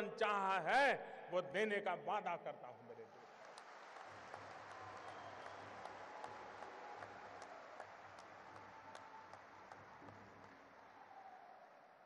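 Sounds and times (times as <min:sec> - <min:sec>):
audience applause: 0:03.1 - 0:12.0.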